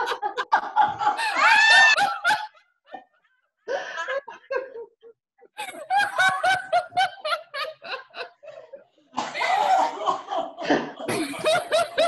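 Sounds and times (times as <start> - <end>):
women laughing: 0.0 - 3.2, 3.8 - 12.0.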